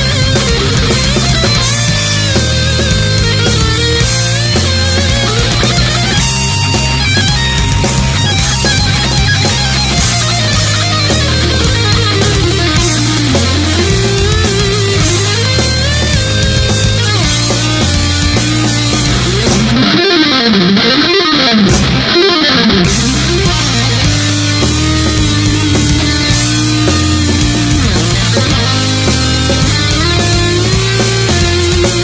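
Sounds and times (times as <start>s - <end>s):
heavy metal band playing: 0.0s - 32.0s
heavy metal music: 0.0s - 32.0s
loud electric guitar: 0.0s - 32.0s.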